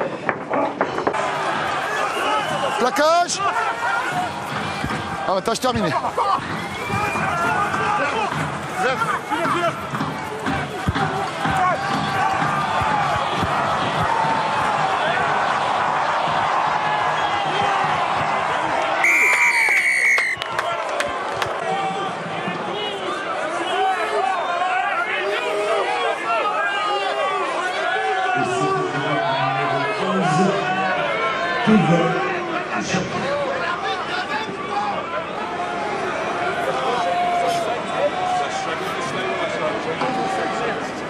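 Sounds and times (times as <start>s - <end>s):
stadium crowd shouting: 0.0s - 41.0s
referee's whistle blast: 19.0s - 20.4s.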